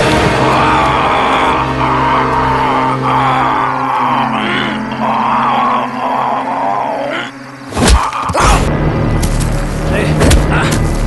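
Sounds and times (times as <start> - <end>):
low music drone: 0.0 - 11.0
man grunting and straining: 0.6 - 8.7.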